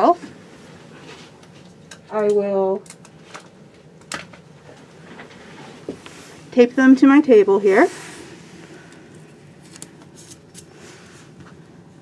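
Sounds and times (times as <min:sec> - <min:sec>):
tape crackling and tapping: 0:01.4 - 0:06.1.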